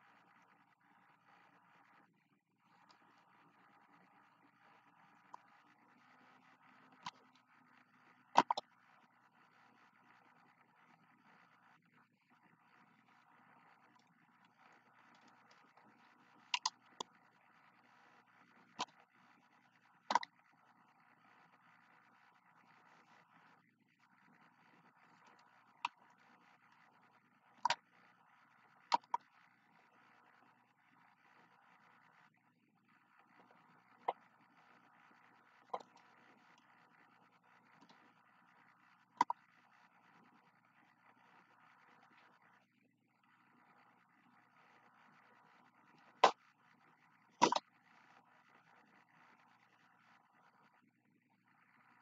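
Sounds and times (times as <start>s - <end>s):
faint room noise: 0.0s - 52.0s.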